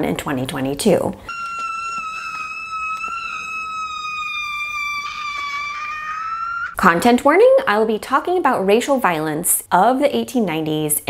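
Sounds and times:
man screaming high-pitched: 1.3s - 6.8s.

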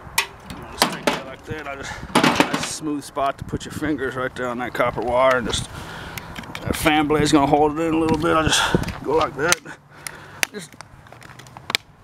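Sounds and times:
handling noise: 0.1s - 2.8s.

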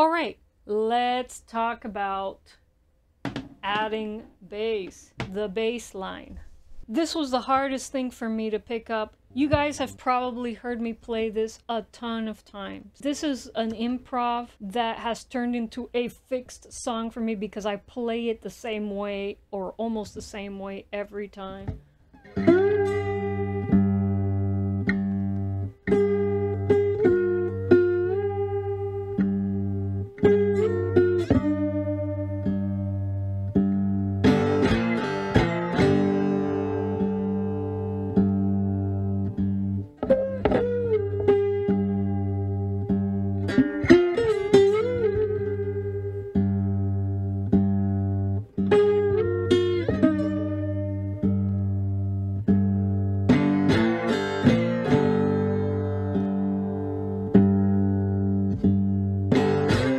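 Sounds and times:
fingerpicked cigar box guitar: 9.4s - 10.9s, 21.4s - 59.9s.

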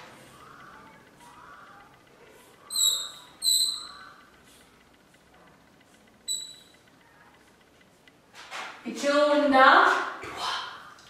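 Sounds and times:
chalk squeaking on blackboard: 2.4s - 4.6s, 6.3s - 6.8s.

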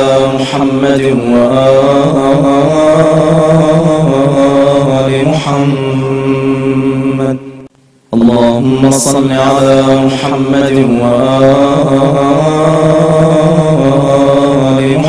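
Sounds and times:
chanted vocal music: 0.0s - 15.0s.

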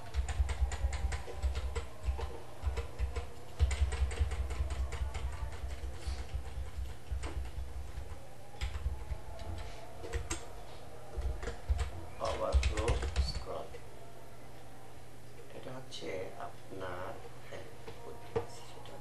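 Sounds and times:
keyboard and mouse clicking: 0.0s - 10.5s, 11.1s - 13.8s.

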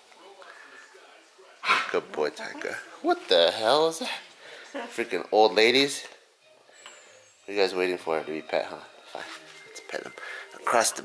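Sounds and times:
dog barking: 1.6s - 2.0s.

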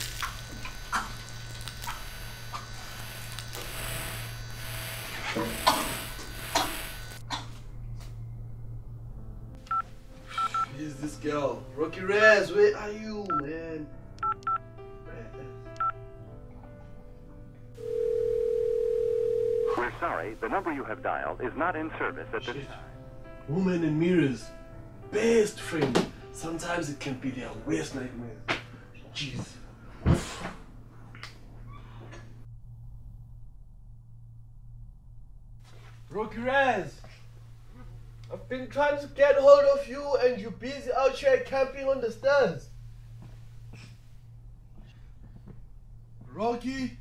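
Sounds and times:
low hum: 32.4s - 36.1s.

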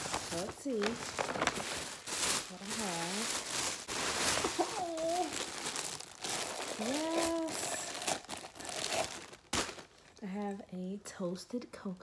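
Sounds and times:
plastic wrapping crinkling: 0.0s - 10.6s.

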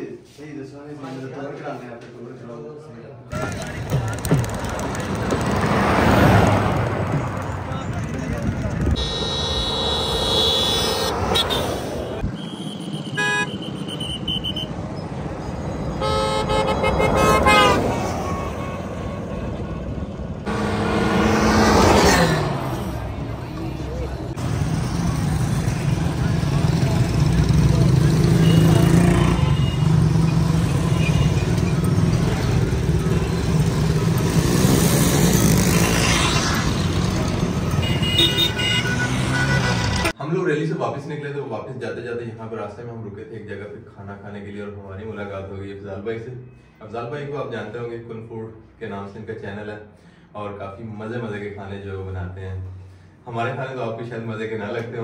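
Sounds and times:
voices: 3.0s - 12.4s
street traffic drone: 3.2s - 40.3s, 41.9s - 55.0s
vehicle engines: 3.3s - 40.2s
vehicle horns tooting: 8.8s - 14.8s, 15.9s - 22.6s, 28.1s - 33.8s, 37.4s - 40.2s.

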